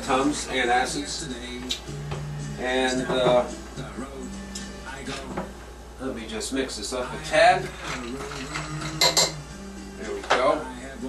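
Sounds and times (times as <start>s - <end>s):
background music: 0.0s - 11.0s
spoon clinking against glass: 7.8s - 9.4s.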